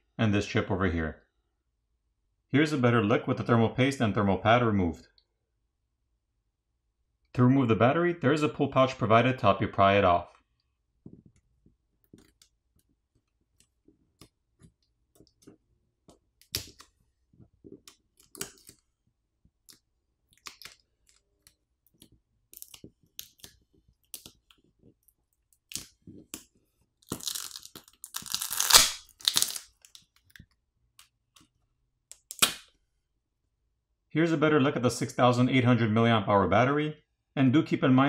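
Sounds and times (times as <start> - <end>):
adhesive crackling and tearing: 16.4 - 16.9, 17.7 - 18.9, 19.6 - 24.6, 25.4 - 30.4
sharp crack: 27.1 - 29.7, 32.3 - 32.8.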